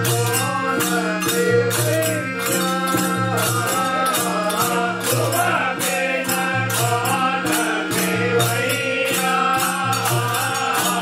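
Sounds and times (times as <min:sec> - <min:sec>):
harmonium: 0:00.0 - 0:11.0
percussion strokes: 0:00.0 - 0:11.0
voices singing devotional song: 0:00.0 - 0:11.0.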